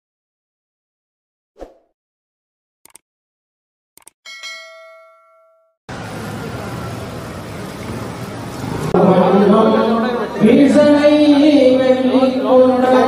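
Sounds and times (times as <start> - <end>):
bell-like notification ding: 4.3 - 5.8
noisy background: 5.9 - 13.0.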